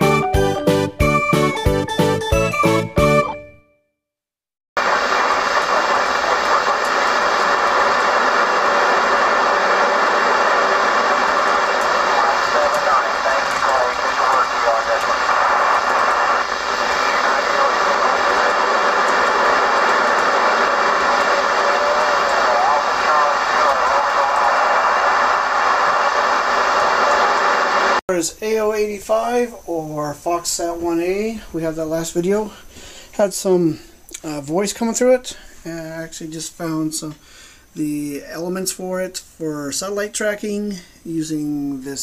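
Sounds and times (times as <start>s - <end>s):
radio receiver noise: 4.8s - 28.0s
faint wavering radio voices: 5.0s - 27.2s.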